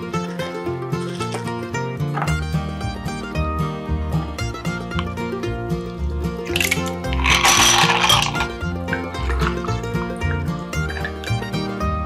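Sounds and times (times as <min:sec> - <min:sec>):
background music: 0:00.0 - 0:12.0
ice cubes clattering: 0:06.5 - 0:09.8.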